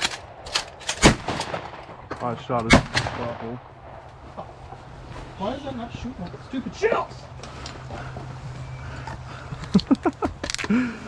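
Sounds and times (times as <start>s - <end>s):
shotgun blast: 1.0s - 1.8s, 2.7s - 3.6s.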